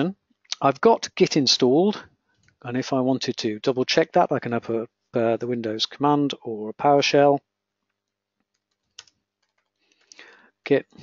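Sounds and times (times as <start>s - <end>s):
typing on computer keyboard: 8.4s - 10.1s.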